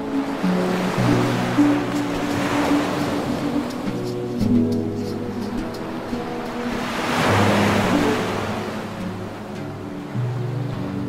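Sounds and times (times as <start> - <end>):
calm meditation music: 0.0 - 11.0
wave washing in: 0.0 - 11.0.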